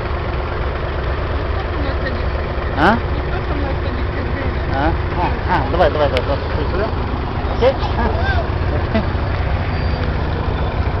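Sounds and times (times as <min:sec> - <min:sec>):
boat engine rumbling: 0:00.0 - 0:11.0.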